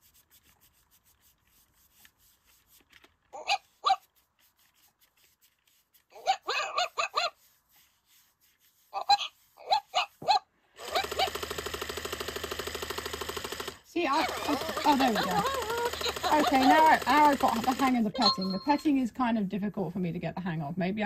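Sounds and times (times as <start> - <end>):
robot dog electronic yips: 6.2 - 7.4, 9.0 - 11.3
rapidly pulsing buzz: 10.8 - 18.1.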